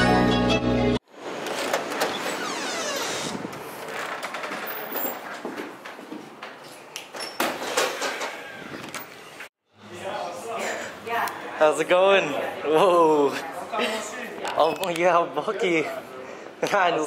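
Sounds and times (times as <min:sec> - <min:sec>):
street noise: 0:00.0 - 0:17.0
glass door opening: 0:01.2 - 0:05.9, 0:07.1 - 0:09.2
footsteps: 0:01.4 - 0:07.1.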